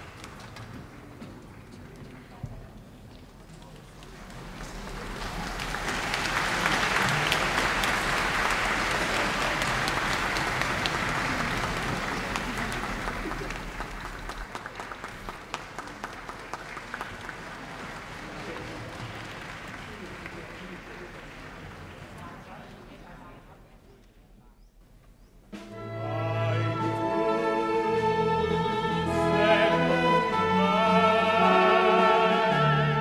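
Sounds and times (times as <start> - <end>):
audience applauding: 0.0 - 2.5, 3.6 - 22.9.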